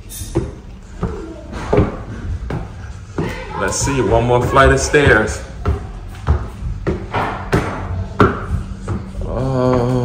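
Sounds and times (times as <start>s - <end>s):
footsteps on hard floor: 0.2s - 10.0s
person humming: 9.1s - 10.0s.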